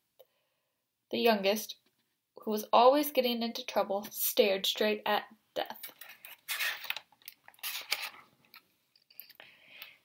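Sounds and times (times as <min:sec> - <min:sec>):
paper page rustling: 0:05.9 - 0:08.3.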